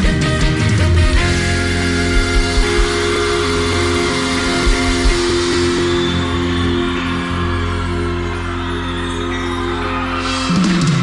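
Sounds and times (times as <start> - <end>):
band holding a chord: 0.6 - 8.9
deep drum thumps: 1.0 - 5.6.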